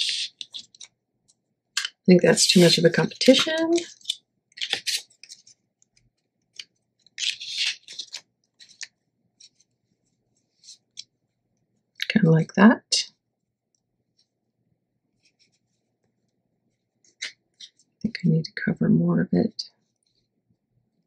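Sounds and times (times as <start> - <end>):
paper rustling and ticks: 0.0 - 9.7.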